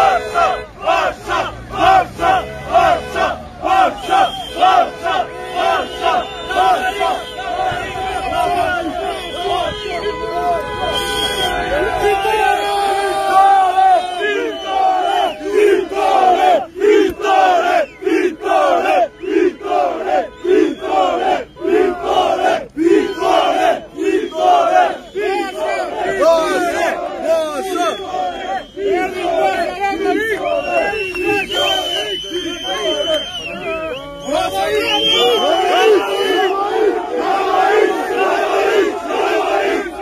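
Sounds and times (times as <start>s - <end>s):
crowd chanting: 0.0s - 40.0s.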